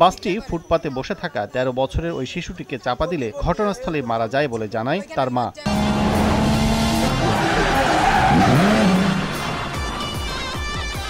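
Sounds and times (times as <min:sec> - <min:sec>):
engine revving: 0:05.7 - 0:11.0
tyres skidding: 0:05.7 - 0:11.0.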